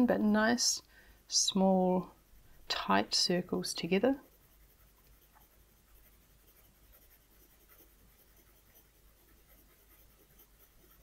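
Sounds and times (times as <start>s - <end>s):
pencil scratching on paper: 1.3s - 11.0s.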